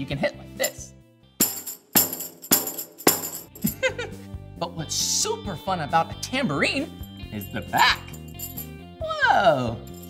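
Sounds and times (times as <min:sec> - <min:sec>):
tambourine hand slaps: 0:01.4 - 0:03.9, 0:07.4 - 0:08.8.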